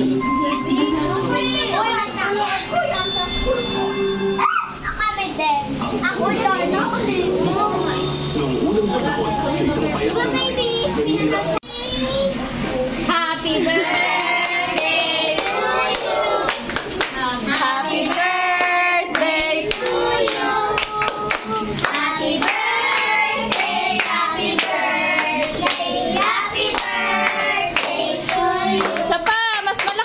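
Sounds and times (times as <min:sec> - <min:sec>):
children singing together: 0:13.7 - 0:16.8, 0:17.5 - 0:29.1.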